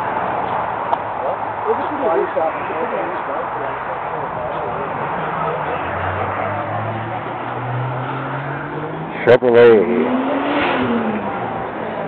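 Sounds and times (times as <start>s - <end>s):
crowd chatter: 0.0s - 12.0s
car engine revving past: 4.6s - 12.0s.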